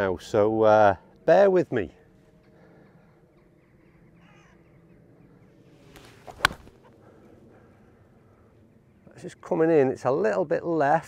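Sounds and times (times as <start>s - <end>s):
golf club swish: 5.9s - 6.8s
club striking golf ball: 6.0s - 6.8s.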